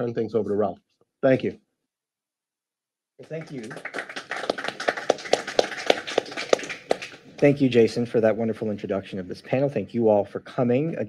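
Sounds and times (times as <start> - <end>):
audience applause: 3.2 - 7.7.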